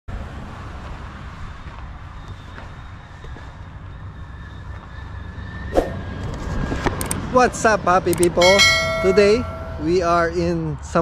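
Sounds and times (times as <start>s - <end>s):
faint high tone: 8.4s - 10.0s.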